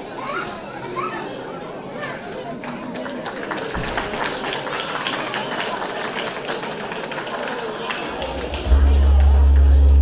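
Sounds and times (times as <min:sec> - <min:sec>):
children's high voices: 0:00.0 - 0:02.4
background chatter of voices: 0:00.0 - 0:10.0.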